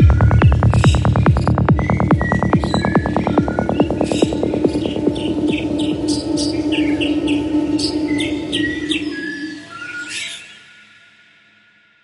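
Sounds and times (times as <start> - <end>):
bird-like chirp: 0.0 - 10.7.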